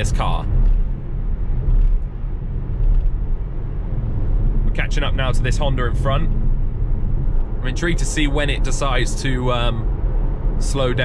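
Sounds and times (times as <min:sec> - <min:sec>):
road and tyre rumble in car: 0:00.0 - 0:11.0.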